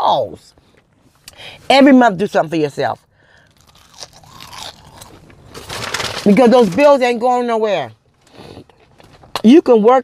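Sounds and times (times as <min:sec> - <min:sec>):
person crunching food: 0:03.4 - 0:06.3.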